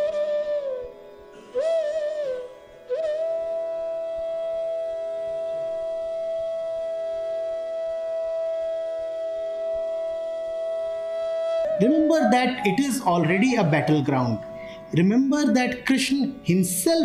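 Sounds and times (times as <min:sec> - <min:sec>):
long held note: 0:11.6 - 0:15.0.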